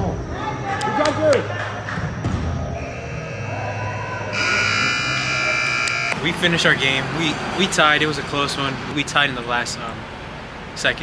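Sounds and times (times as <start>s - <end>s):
arena buzzer high electric tone: 2.4s - 6.2s.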